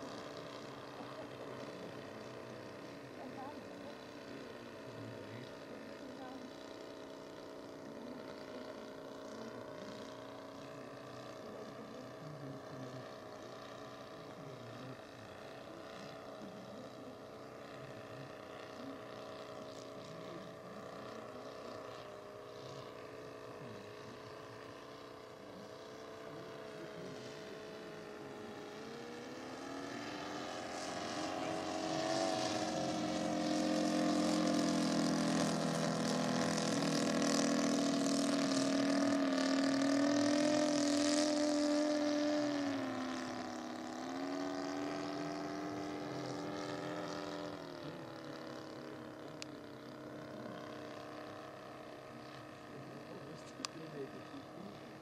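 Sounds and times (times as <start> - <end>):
model plane engine droning: 0.0 - 55.0.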